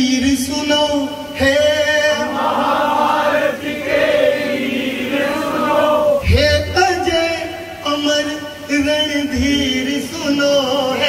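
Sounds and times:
group singing devotional chorus: 0:01.6 - 0:06.3.

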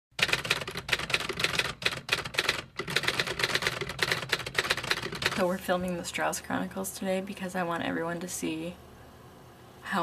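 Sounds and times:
typewriter keys clacking: 0:00.2 - 0:05.5.

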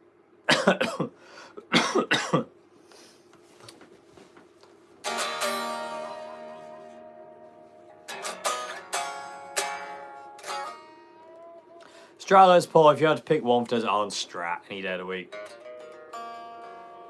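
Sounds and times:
electric guitar chords: 0:05.0 - 0:12.2, 0:15.3 - 0:17.0.

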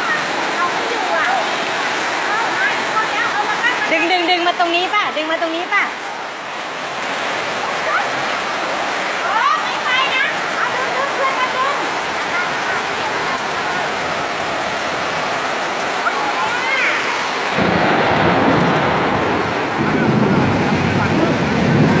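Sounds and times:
floodwater rushing: 0:00.0 - 0:22.0
rain: 0:00.0 - 0:22.0
deep rumble: 0:17.5 - 0:22.0.

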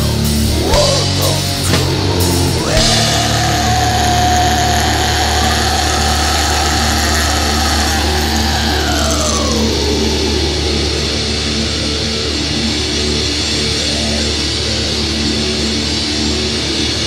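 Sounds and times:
heavy metal music: 0:00.0 - 0:17.0.

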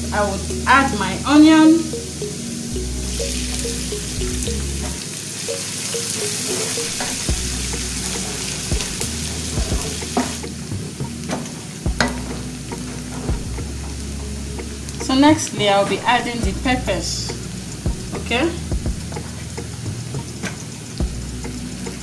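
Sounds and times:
onion sizzling in oil: 0:00.1 - 0:22.0.

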